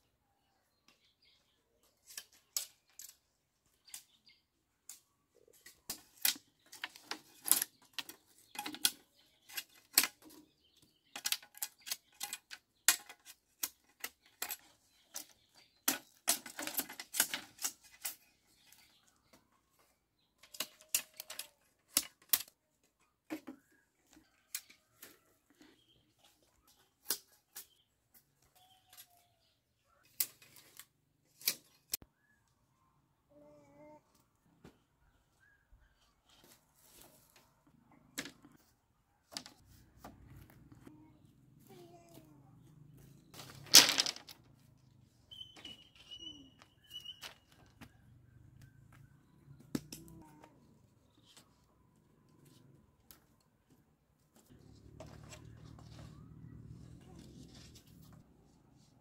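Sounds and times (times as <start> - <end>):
bamboo poles clacking: 2.0 - 4.2, 4.9 - 29.2, 30.1 - 32.1, 36.4 - 38.6, 39.3 - 41.0, 43.3 - 50.6, 52.5 - 58.2.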